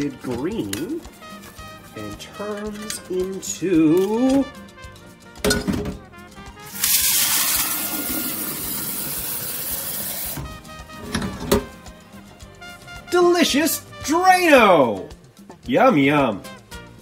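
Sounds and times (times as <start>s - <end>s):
tap water running into pitcher: 6.7s - 10.5s.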